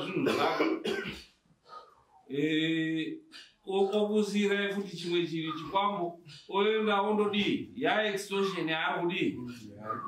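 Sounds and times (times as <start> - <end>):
man clearing his throat: 0.0 - 1.3.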